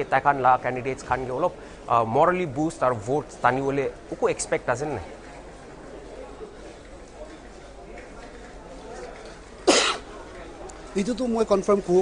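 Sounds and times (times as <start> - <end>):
low background murmur: 0.0 - 12.0
loud cough: 9.6 - 10.1.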